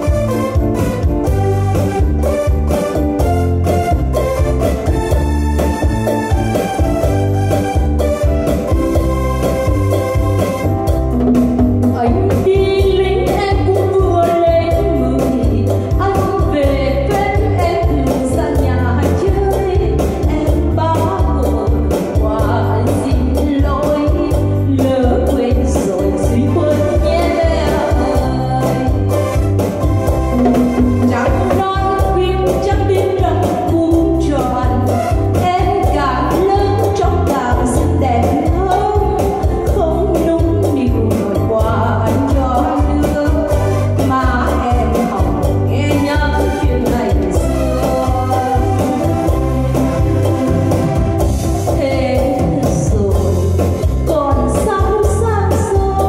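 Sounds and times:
electronic keyboard: 0:00.0 - 0:56.0
percussion steady beat: 0:00.0 - 0:56.0
woman singing with vibrato: 0:11.9 - 0:29.3, 0:30.6 - 0:50.8, 0:51.6 - 0:56.0.

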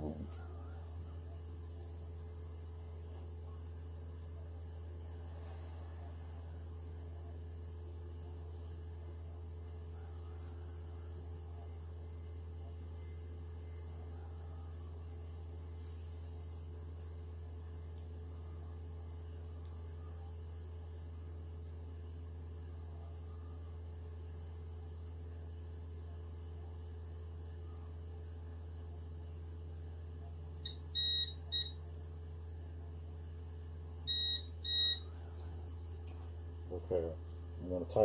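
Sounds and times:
steady low hum: 0:00.0 - 0:38.0
printer buzzer beeping: 0:30.6 - 0:31.8, 0:34.1 - 0:35.0.

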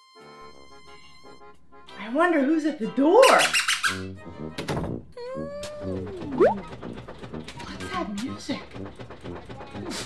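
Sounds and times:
background music with held chord: 0:00.0 - 0:03.2
pitched tone sliding downward: 0:06.2 - 0:06.6.

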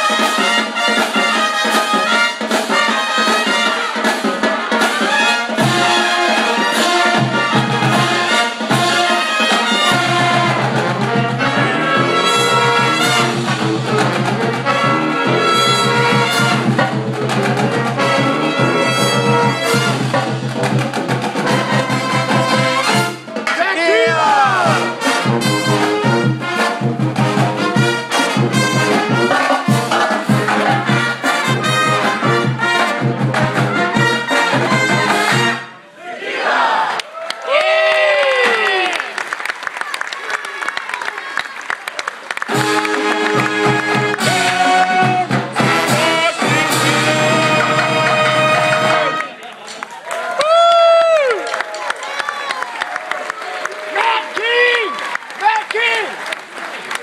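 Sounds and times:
saxophones: 0:00.0 - 0:23.4, 0:42.5 - 0:49.3
trombones: 0:00.0 - 0:23.5, 0:24.1 - 0:36.6, 0:42.4 - 0:49.4
trumpets: 0:00.0 - 0:36.8, 0:42.4 - 0:49.4.

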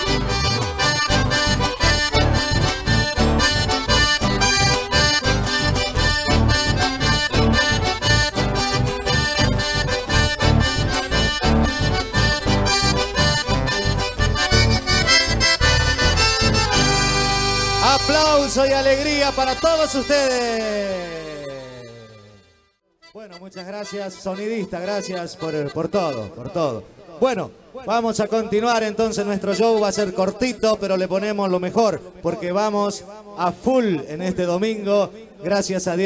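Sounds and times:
steady beat: 0:00.0 - 0:20.5
folk band playing instrumental: 0:00.0 - 0:22.1
accordion: 0:00.0 - 0:26.6, 0:28.8 - 0:31.7.

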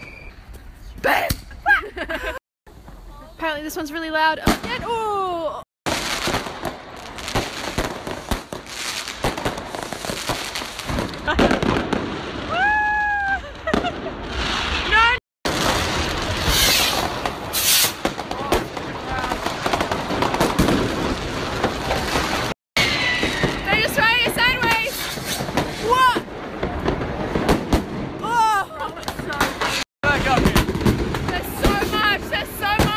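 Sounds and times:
fireworks cracking and banging: 0:02.7 - 0:32.9.

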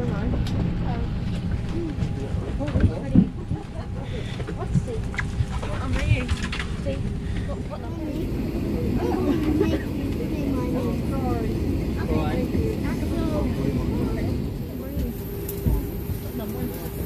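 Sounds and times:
indistinct chatter of passengers: 0:00.0 - 0:17.0
low cabin rumble: 0:00.0 - 0:17.0.

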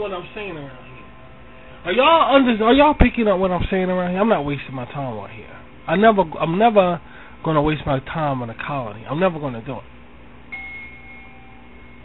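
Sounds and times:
high ringing tone: 0:10.5 - 0:12.0.

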